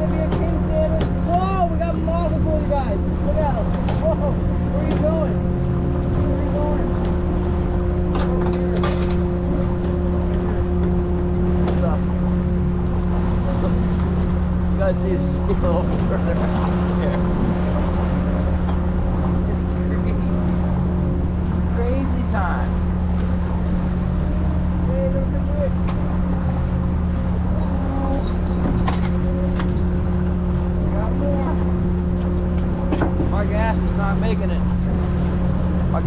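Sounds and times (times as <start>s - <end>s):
boat engine droning: 0.0s - 36.0s.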